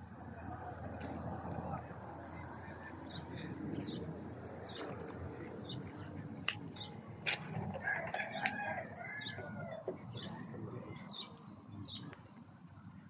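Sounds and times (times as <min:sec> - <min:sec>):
outdoor background murmur: 0:00.0 - 0:13.0
rooster crowing: 0:07.8 - 0:09.8.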